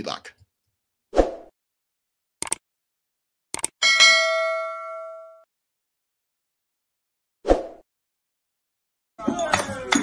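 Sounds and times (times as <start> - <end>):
notification bell ding: 3.8 - 5.5.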